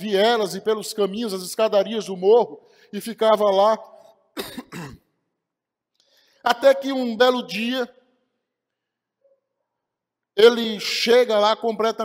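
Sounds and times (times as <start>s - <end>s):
man clearing throat: 4.4s - 5.1s.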